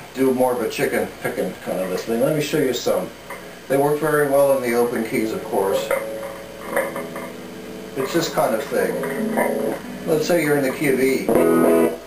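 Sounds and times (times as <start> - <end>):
electric guitar single notes: 4.8 - 12.0.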